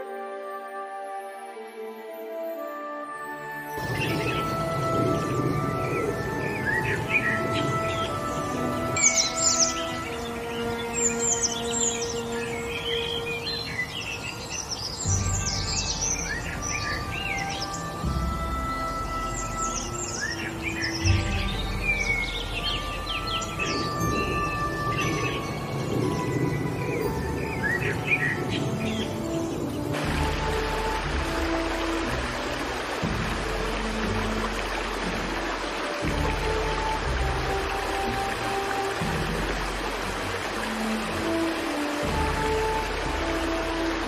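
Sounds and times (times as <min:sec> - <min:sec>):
calm ambient music: 0:00.0 - 0:44.0
birds chirping and trilling: 0:03.2 - 0:44.0.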